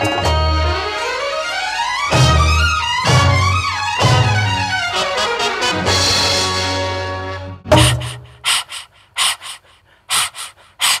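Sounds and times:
person breathing hard: 0:07.8 - 0:11.0.

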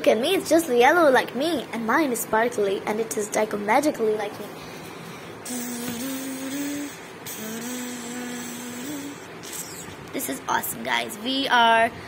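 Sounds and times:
person humming: 0:05.4 - 0:10.0.

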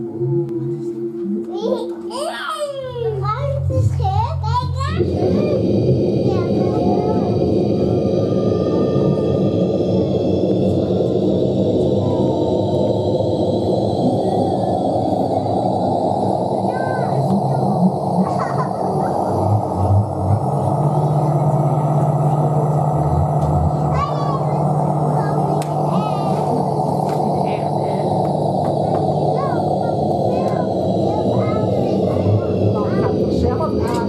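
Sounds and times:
high tones gliding upward: 0:00.0 - 0:03.6, 0:04.8 - 0:34.0
dense low drone: 0:00.0 - 0:34.0
steady low hum: 0:00.0 - 0:34.0
low thumps: 0:05.0 - 0:34.0.

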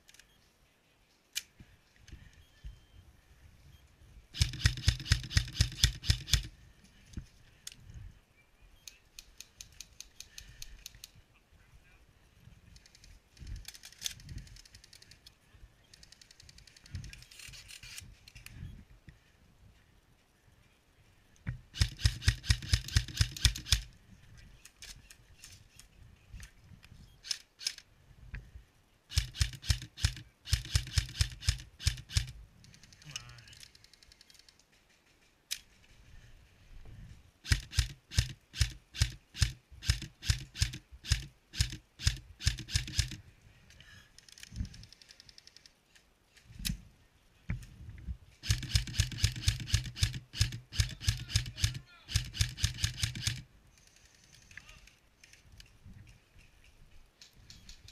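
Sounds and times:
airsoft rifle rapid shots: 0:04.4 - 0:06.5, 0:21.7 - 0:23.9, 0:29.1 - 0:32.3, 0:37.4 - 0:43.2, 0:48.4 - 0:53.4.

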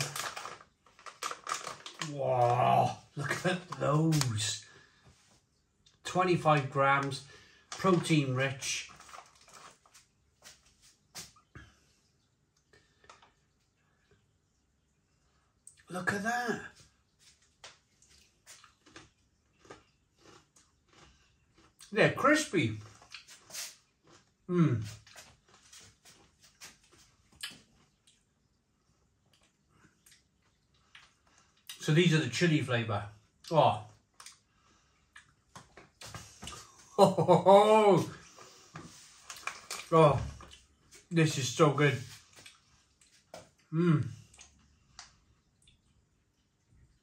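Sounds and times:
person chewing crispy snacks: 0:00.0 - 0:04.7, 0:07.0 - 0:10.6, 0:17.2 - 0:28.5, 0:29.1 - 0:31.9, 0:34.0 - 0:41.1, 0:42.1 - 0:46.4
snack bag crinkling: 0:00.0 - 0:04.7, 0:07.0 - 0:10.6, 0:17.7 - 0:21.8, 0:38.9 - 0:40.7.

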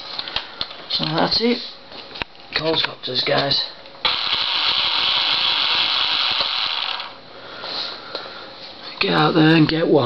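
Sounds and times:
electric motors and propellers buzzing: 0:04.0 - 0:07.2.

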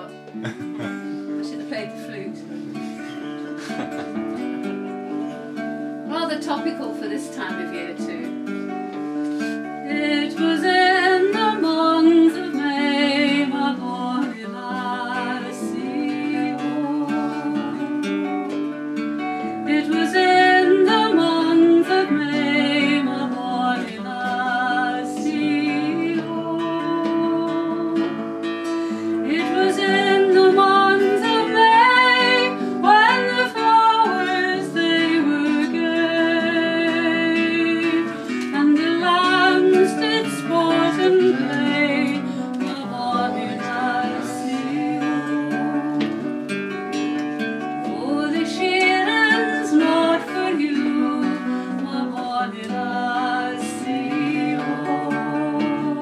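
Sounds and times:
acoustic guitar: 0:00.0 - 0:56.0
woman singing folk song: 0:01.2 - 0:02.8, 0:04.4 - 0:56.0.

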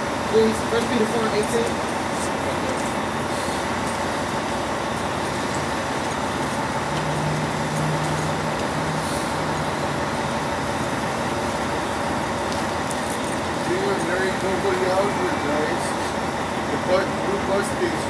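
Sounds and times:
large vehicle engine hum: 0:00.0 - 0:18.0
street traffic noise: 0:00.0 - 0:18.0.

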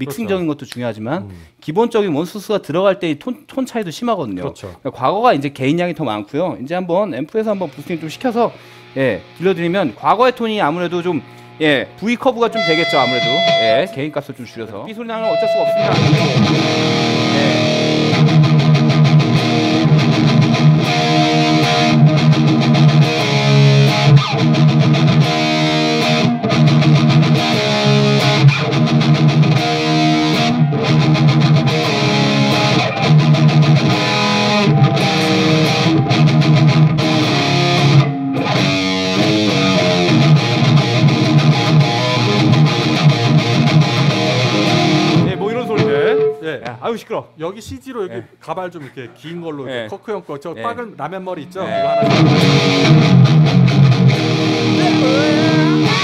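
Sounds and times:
distorted electric guitar riff: 0:07.4 - 0:14.4, 0:15.0 - 0:46.6, 0:51.6 - 0:56.0.

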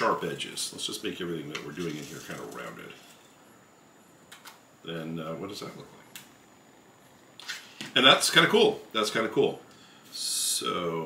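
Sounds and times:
man speaking: 0:00.0 - 0:03.2, 0:04.8 - 0:06.1, 0:07.9 - 0:11.0.

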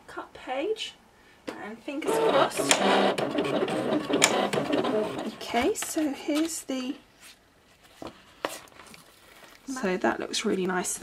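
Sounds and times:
cutting machine motors whining: 0:02.0 - 0:05.5.

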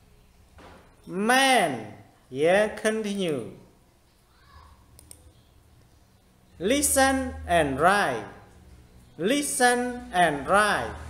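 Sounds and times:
computer mouse clicks: 0:04.9 - 0:05.3.

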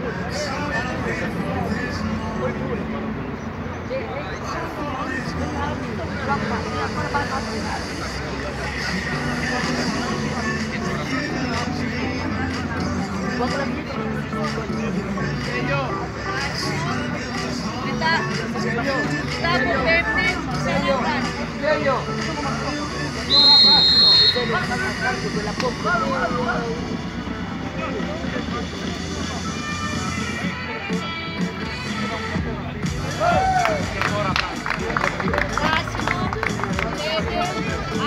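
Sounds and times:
chatter of voices: 0:00.0 - 0:38.0
referee's whistle blast: 0:23.3 - 0:24.7.

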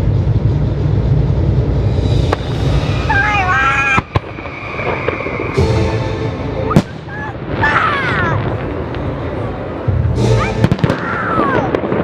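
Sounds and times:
fireworks banging: 0:00.0 - 0:12.0
music playing: 0:01.1 - 0:11.7.

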